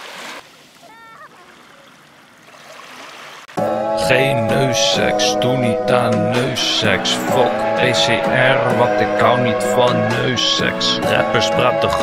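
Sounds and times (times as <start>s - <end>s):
seawater washing over sand: 0.0s - 3.5s.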